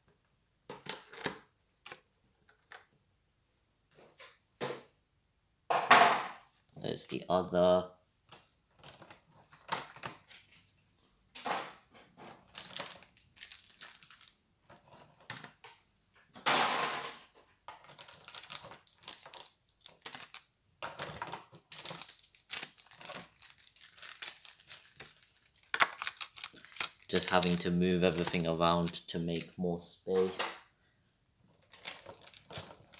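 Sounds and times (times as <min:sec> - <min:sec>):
packaging crinkling and rustling: 0:00.8 - 0:02.0, 0:12.4 - 0:15.6, 0:17.8 - 0:29.6, 0:31.5 - 0:32.9.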